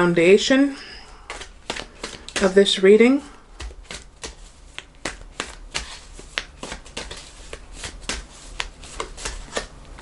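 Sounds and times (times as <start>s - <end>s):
cards being shuffled: 1.2s - 2.8s, 3.6s - 10.0s.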